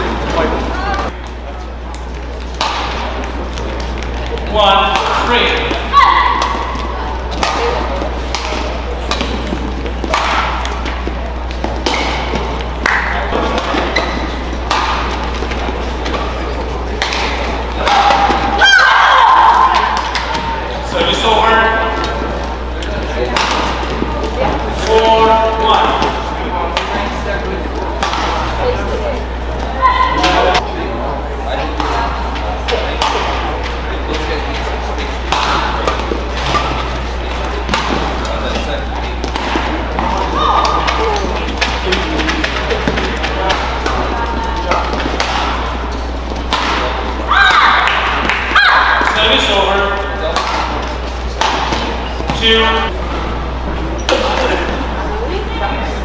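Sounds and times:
steady low hum: 0.0s - 56.0s
rackets striking shuttlecock: 1.9s - 18.8s, 19.5s - 20.7s, 21.5s - 27.2s, 27.9s - 28.7s, 31.7s - 49.2s, 50.2s - 53.3s, 54.0s - 54.8s.

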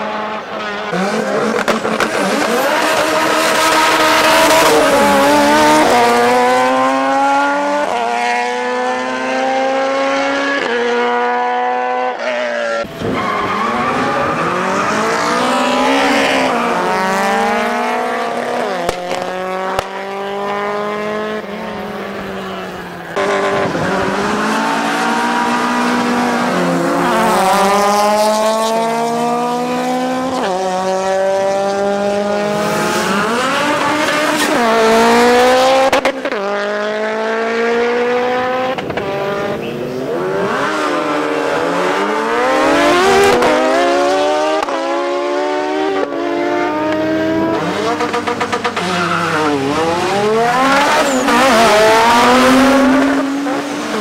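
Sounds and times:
racing car engines accelerating: 0.0s - 54.0s.

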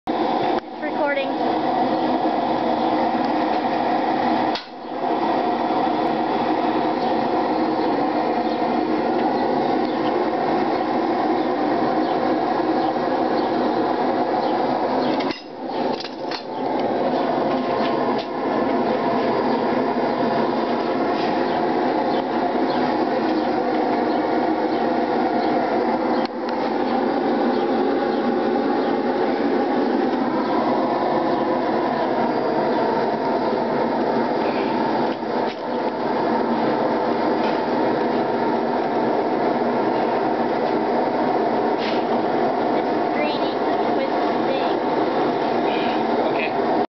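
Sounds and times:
gas forge burner rushing: 0.1s - 46.9s.

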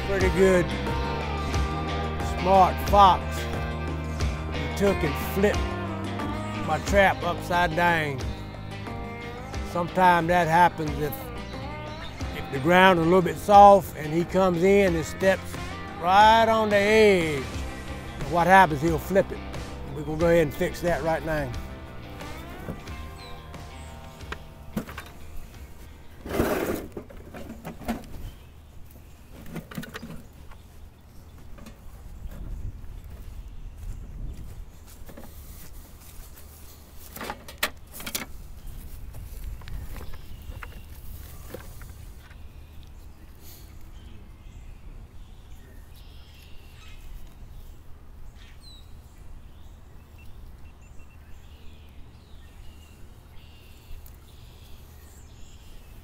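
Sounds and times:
digging scrapes and ticks: 6.6s - 33.0s, 34.5s - 43.9s
faint bird chirps: 38.6s - 56.0s.

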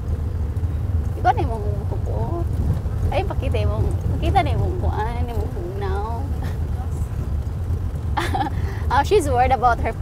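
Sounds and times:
road noise: 0.0s - 10.0s
vehicle engine rumble: 0.0s - 10.0s.

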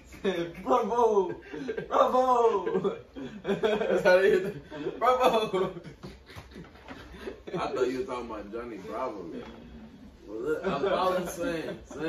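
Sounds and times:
men's voices: 0.0s - 12.0s
men laughing: 0.1s - 8.0s, 10.4s - 12.0s.

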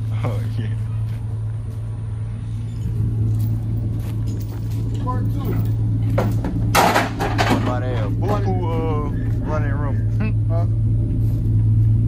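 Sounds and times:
vehicle engine running steadily: 0.0s - 12.0s.

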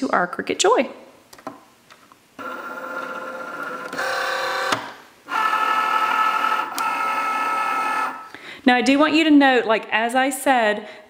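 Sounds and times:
cutting machine motor whirring: 2.4s - 8.2s.

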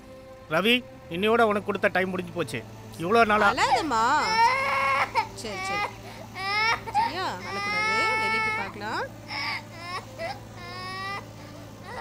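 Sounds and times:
toddler crying: 3.4s - 12.0s.

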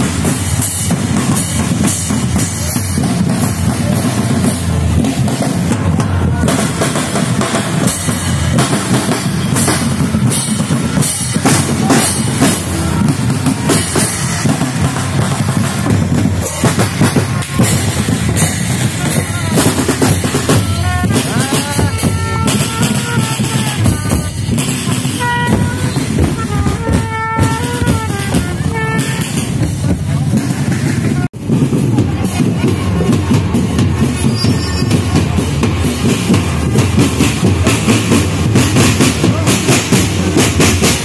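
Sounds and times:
bucket drum band playing: 0.0s - 41.0s
crowd voices: 0.0s - 41.0s
road traffic: 0.0s - 41.0s
trumpet playing notes: 19.0s - 29.8s.

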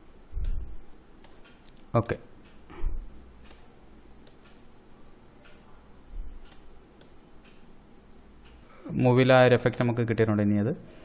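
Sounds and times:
faint room noise: 0.0s - 11.0s
computer mouse clicking: 1.2s - 2.6s, 3.4s - 4.6s, 6.4s - 7.6s.

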